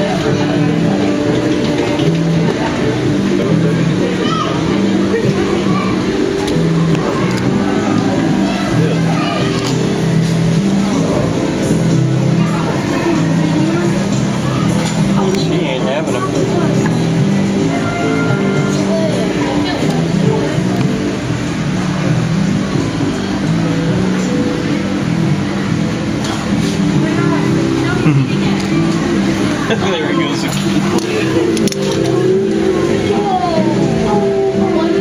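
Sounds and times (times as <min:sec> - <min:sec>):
people talking indistinctly: 0:00.0 - 0:35.0.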